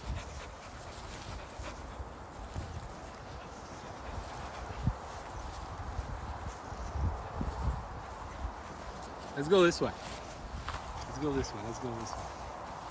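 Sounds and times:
dogs moving on grass: 0.0s - 12.9s.

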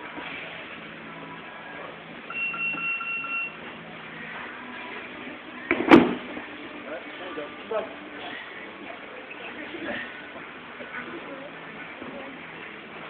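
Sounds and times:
high beep-like tone: 2.3s - 3.6s.

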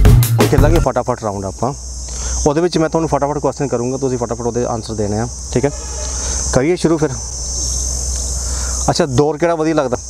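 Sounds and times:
insects droning: 0.0s - 10.0s.

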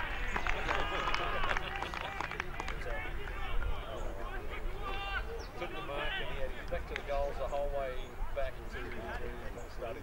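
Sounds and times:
voices shouting and calling: 0.0s - 10.0s.

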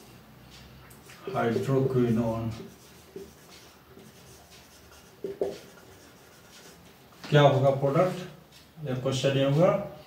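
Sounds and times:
marker pen writing on whiteboard: 0.5s - 8.8s.

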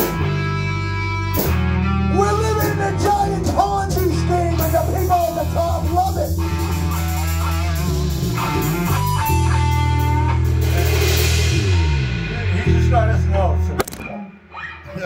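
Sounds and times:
drum kit: 0.0s - 14.2s
electric bass: 0.0s - 15.0s
electric guitar bent notes: 0.0s - 15.0s.

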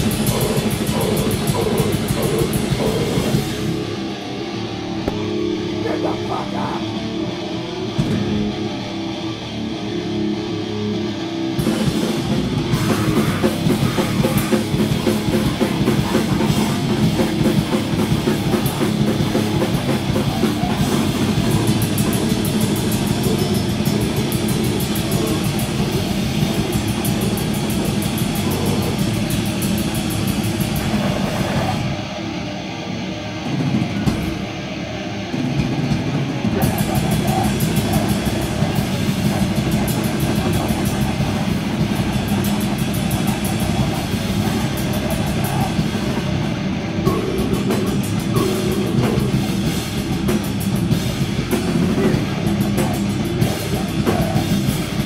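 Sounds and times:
pounding drums: 0.0s - 4.1s, 11.6s - 32.0s, 35.5s - 55.0s
distorted guitar: 0.0s - 55.0s.

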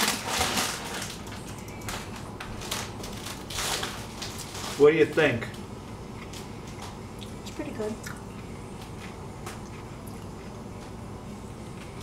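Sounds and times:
person chewing food: 8.0s - 11.0s.

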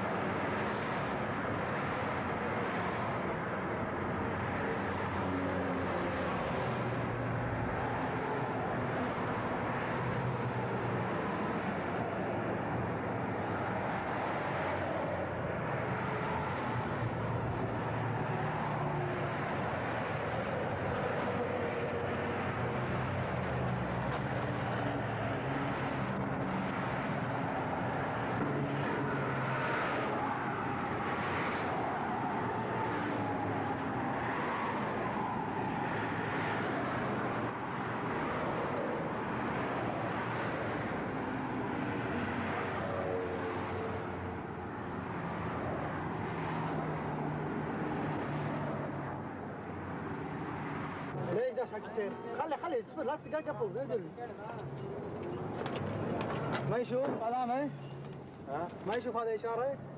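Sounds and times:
cars driving past: 0.0s - 59.9s.

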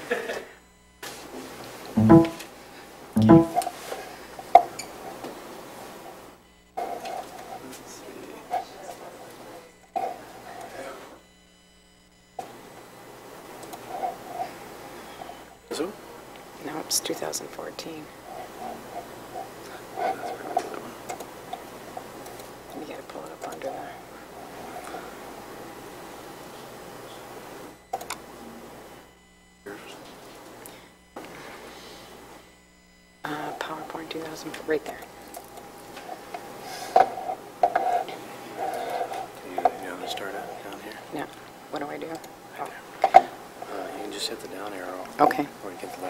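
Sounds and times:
room noise: 29.7s - 41.9s.

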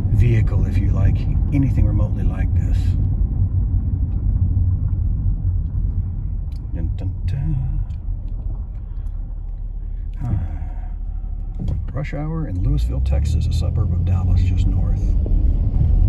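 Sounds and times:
engine and road noise rumble: 0.0s - 16.0s.

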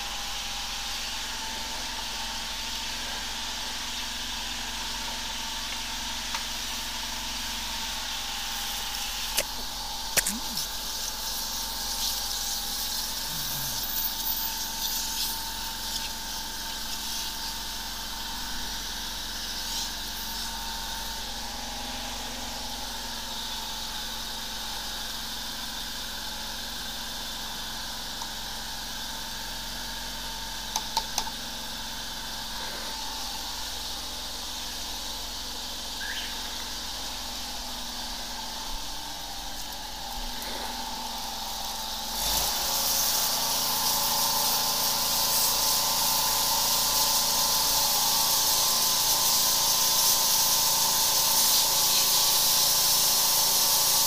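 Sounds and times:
high-pressure water spraying hiss: 0.0s - 30.7s, 31.4s - 54.0s
engine-driven pump running: 0.0s - 54.0s
sharp clicks: 9.3s - 10.6s.

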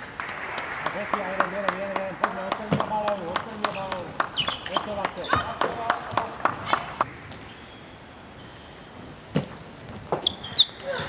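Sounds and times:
shoe squeaks on floor: 4.4s - 5.5s, 7.4s - 11.0s.

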